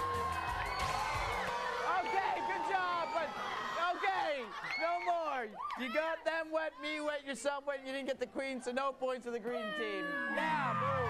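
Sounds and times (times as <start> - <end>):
excited high-pitched shouting voices: 9.3 - 11.0.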